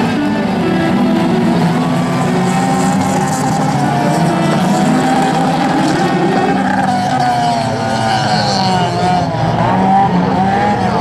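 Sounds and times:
guitar music: 0.0 - 7.8
racing car engines revving: 0.0 - 11.0.

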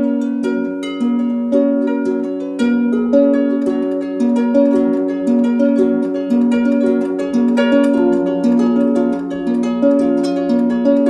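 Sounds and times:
plucked strings repeating pattern: 0.0 - 11.0.

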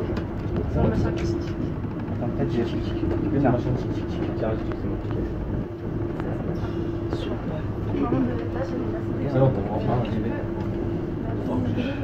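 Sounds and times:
electric train motor hum: 0.0 - 12.0
wheels rumbling on track: 0.0 - 12.0.

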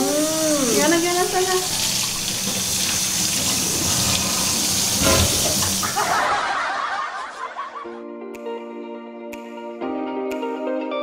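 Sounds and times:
music with held notes: 7.9 - 11.0.

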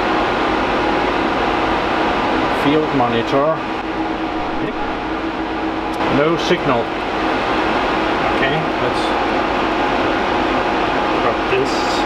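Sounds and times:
server cooling fans whirring: 0.0 - 12.0.

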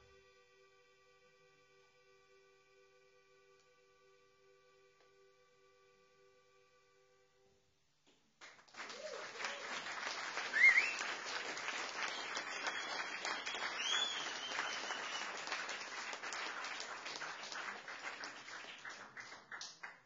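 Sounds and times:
audience applauding: 8.4 - 20.0
short whistles: 10.4 - 15.6.

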